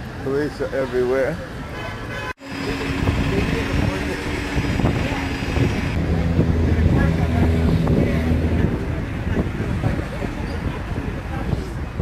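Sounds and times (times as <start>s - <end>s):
people's voices: 0.0s - 12.0s
traffic rumble: 0.0s - 12.0s.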